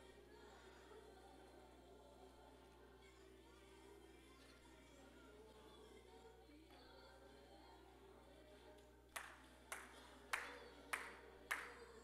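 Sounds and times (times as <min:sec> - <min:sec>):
hand claps with echo: 0:08.8 - 0:12.0.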